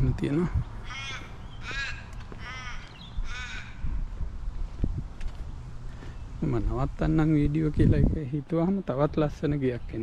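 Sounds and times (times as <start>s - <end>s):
crow cawing: 0.8s - 4.0s.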